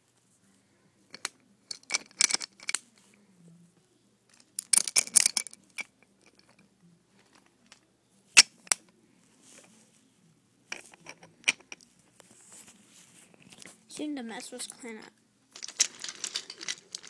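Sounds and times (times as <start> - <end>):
wooden toy train cars clacking: 4.3 - 6.6, 15.6 - 17.0
toy train rolling on track: 15.6 - 17.0.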